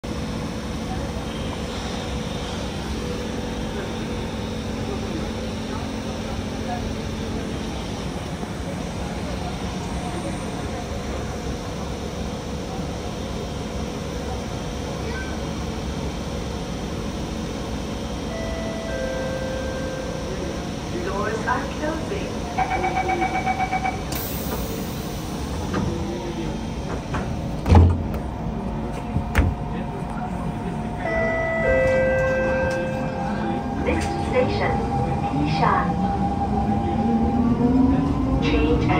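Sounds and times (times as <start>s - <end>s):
train background hum: 0.0s - 38.9s
door-closing warning beeps: 22.6s - 24.4s
train doors thudding shut: 26.8s - 28.3s, 29.0s - 29.8s.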